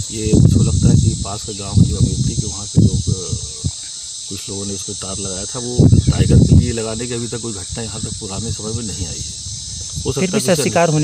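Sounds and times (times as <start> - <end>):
man speaking: 0.0 - 9.4, 10.0 - 11.0
high-pitched insect chorus: 0.0 - 11.0.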